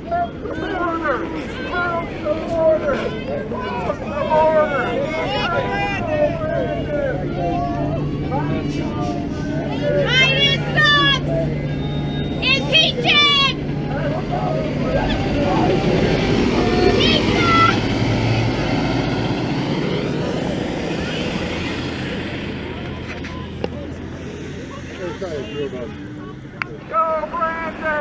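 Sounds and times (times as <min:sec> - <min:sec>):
people shouting: 0:00.0 - 0:18.0
bus passing: 0:00.0 - 0:28.0.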